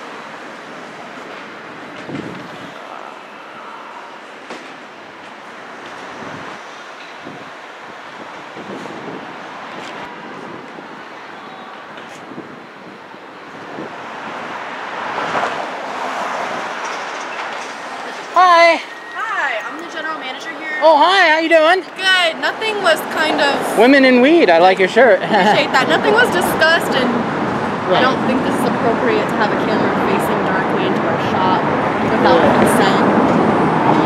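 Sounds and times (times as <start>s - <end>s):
passing traffic: 0.0s - 34.0s
vehicle passing by: 13.7s - 18.4s, 22.0s - 34.0s.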